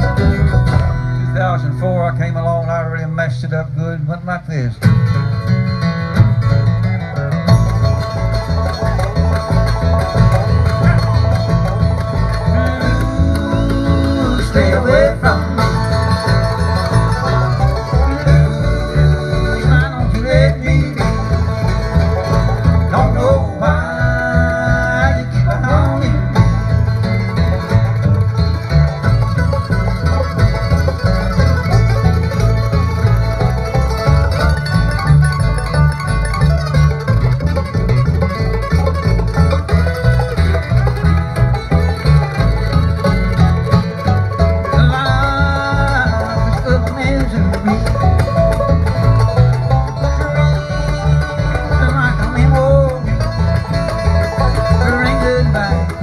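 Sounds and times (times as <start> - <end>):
acoustic guitar: 0.0 - 56.0
banjo: 0.0 - 56.0
upright bass: 0.0 - 56.0.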